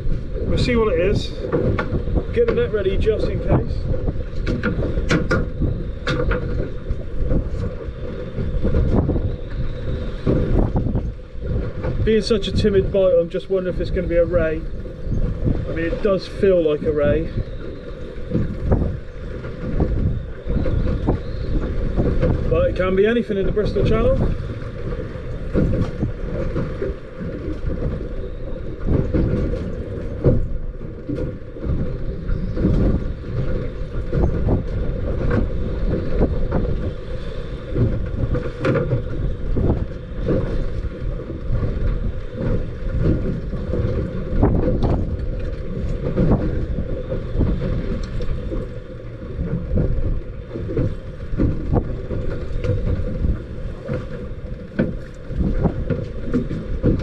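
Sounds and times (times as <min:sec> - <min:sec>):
water slapping boat hull: 0:00.0 - 0:57.0
wind buffeting microphone: 0:00.0 - 0:57.0.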